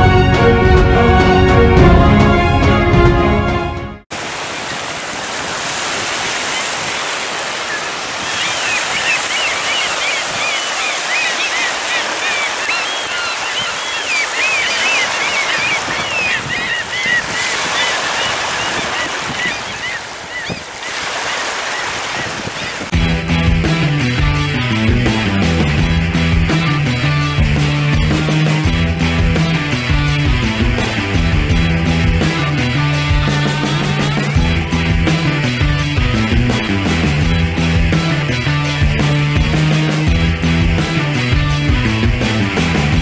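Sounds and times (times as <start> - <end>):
background music: 0.0 - 4.0, 22.9 - 43.0
waves washing over stony shore: 4.1 - 22.9
wind: 4.1 - 23.0.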